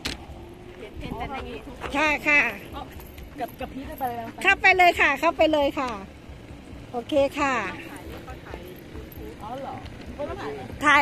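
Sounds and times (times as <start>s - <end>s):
low uneven handling rumble: 0.0s - 11.0s.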